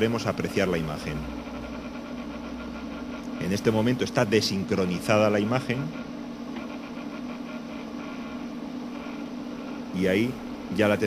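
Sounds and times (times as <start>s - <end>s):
spinning disc motor hum: 0.0s - 11.0s.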